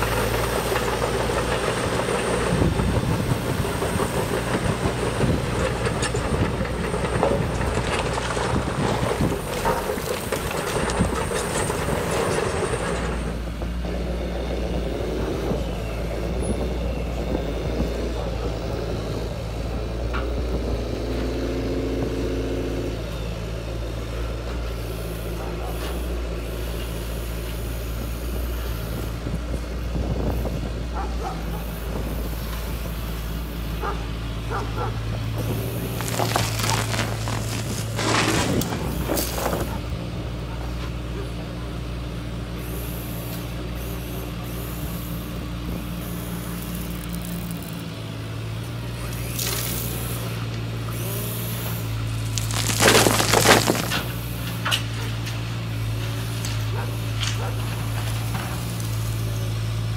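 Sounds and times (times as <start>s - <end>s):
gravel rattling and pouring: 35.4s - 39.8s, 52.0s - 54.6s
model excavator motor hum: 42.5s - 59.9s.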